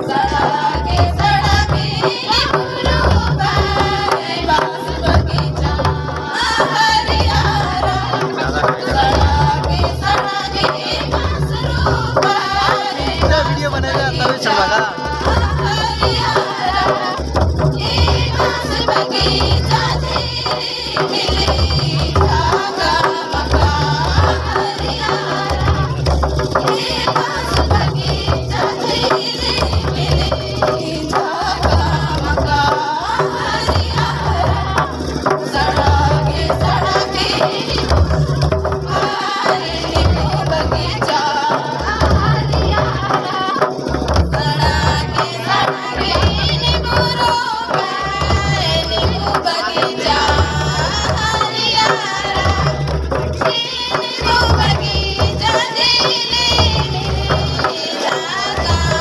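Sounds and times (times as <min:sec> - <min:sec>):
barrel drums beating: 0:00.0 - 0:59.0
voices singing a melody: 0:00.0 - 0:59.0.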